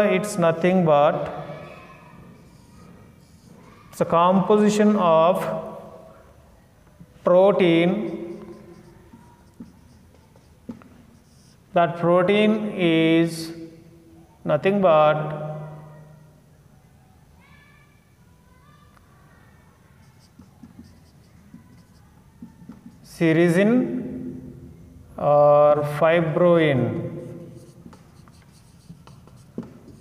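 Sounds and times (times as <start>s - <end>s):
marker writing on whiteboard: 0.0s - 5.8s, 7.0s - 11.8s, 19.8s - 23.6s, 26.9s - 30.0s
marker squeaks: 0.5s - 4.6s, 7.5s - 11.8s, 19.8s - 23.3s, 27.1s - 30.0s.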